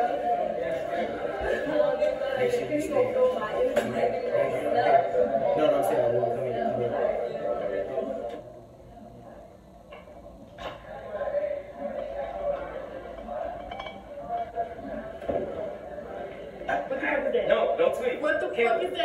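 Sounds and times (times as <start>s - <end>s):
low indistinct voices: 0.0s - 19.0s.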